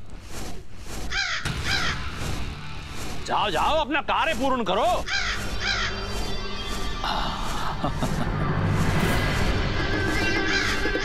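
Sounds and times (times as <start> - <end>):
crow cawing: 1.1 - 2.1, 5.0 - 7.0, 10.2 - 11.0.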